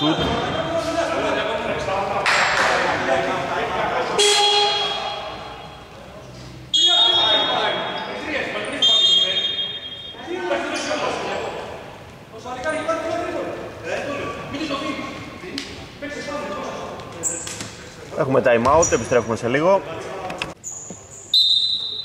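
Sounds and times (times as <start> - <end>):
voices in indoor arena: 0.0 - 22.0
referee whistle blasts: 4.2 - 5.2, 6.7 - 7.6, 8.8 - 10.2, 21.2 - 22.0.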